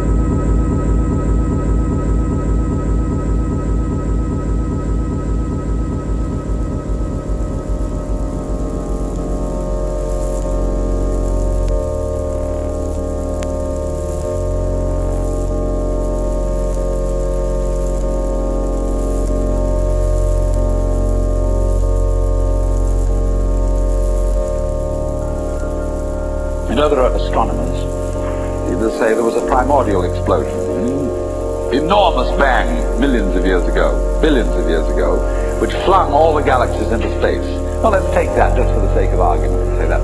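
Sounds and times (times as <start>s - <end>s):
ambient synthesizer chords: 0.0s - 40.0s
deep bass drone: 0.0s - 40.0s
pulsing low synth part: 19.5s - 40.0s.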